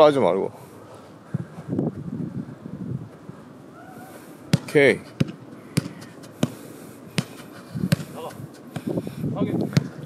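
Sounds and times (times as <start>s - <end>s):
low outdoor background: 0.0s - 10.0s.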